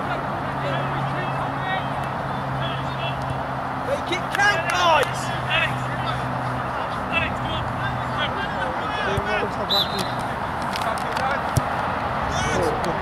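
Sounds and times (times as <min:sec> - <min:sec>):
players calling out: 0:00.0 - 0:13.0.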